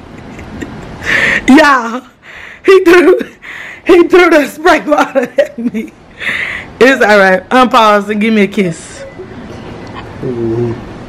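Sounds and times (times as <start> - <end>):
faint room noise: 0.0 - 11.0
person humming low: 10.2 - 10.9.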